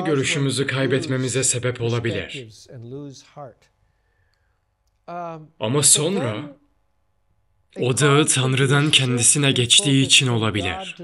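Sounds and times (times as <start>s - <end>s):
man's voice: 0.0s - 3.6s, 5.6s - 6.6s, 7.8s - 11.0s.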